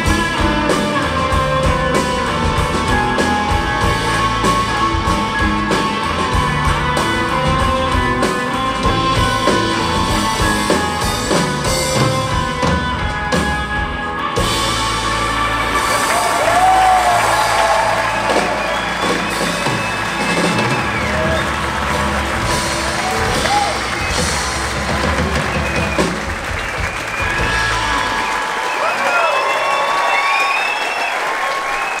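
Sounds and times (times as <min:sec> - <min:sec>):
rock band playing: 0:00.0 - 0:30.4
audience applauding and cheering: 0:00.0 - 0:32.0.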